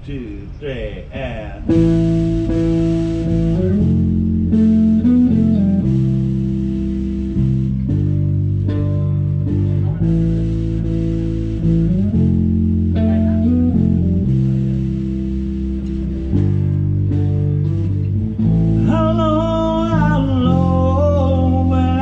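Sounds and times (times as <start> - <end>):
bass guitar: 1.0 - 22.0
electric guitar: 1.6 - 22.0.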